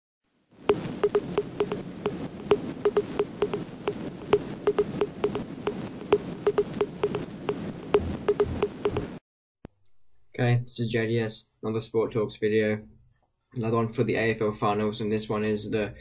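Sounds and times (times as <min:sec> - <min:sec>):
sharp clicks with low blips: 0:00.7 - 0:09.2.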